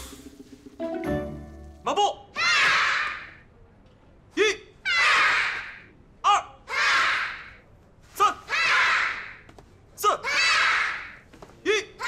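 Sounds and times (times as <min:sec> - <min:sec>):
children shouting together: 0:02.4 - 0:03.4, 0:06.7 - 0:07.6, 0:08.5 - 0:09.4, 0:10.2 - 0:11.2
instructor calling out: 0:04.3 - 0:04.8, 0:06.2 - 0:06.7, 0:08.2 - 0:08.5, 0:10.0 - 0:10.3, 0:11.6 - 0:12.0.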